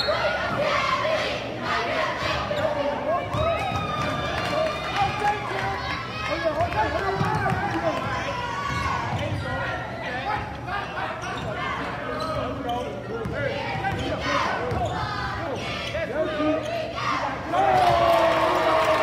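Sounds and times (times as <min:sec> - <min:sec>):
many voices chattering: 0:00.0 - 0:19.0
basketball bouncing on wooden court: 0:07.1 - 0:09.4.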